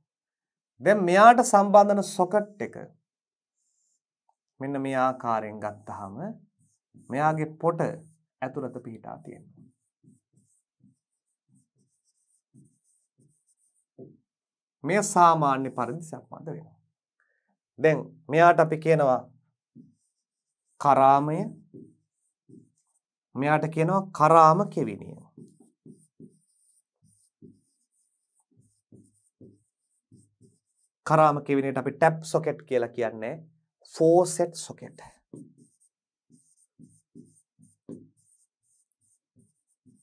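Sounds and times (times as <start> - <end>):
marker scratching on whiteboard: 0.9 - 40.0
pen strokes on a board: 3.0 - 17.1, 18.4 - 32.3, 33.6 - 40.0
pen knocking on board: 36.8 - 38.3.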